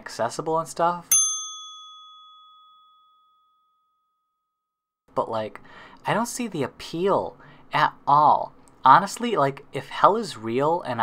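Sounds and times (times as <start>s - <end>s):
bell-like ding ringing: 1.1s - 4.4s.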